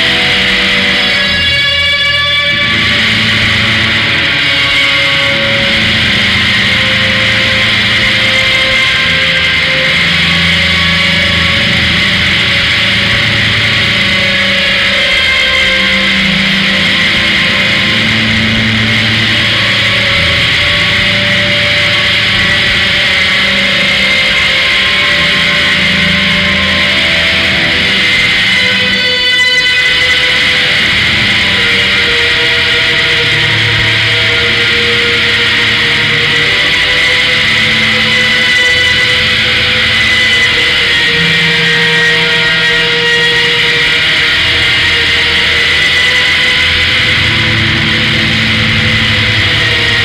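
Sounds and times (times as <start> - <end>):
distorted electric guitar: 0.0 - 50.0
low bass notes: 0.0 - 50.0.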